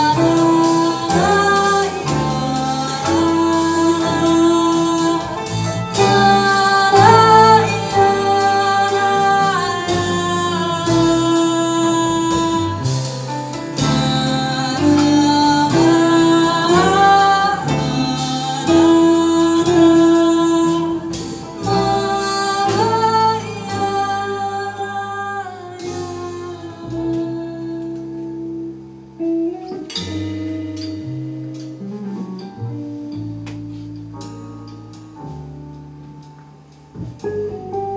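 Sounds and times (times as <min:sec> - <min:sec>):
woman singing: 0:00.0 - 0:28.5
jazz band playing: 0:00.0 - 0:37.9.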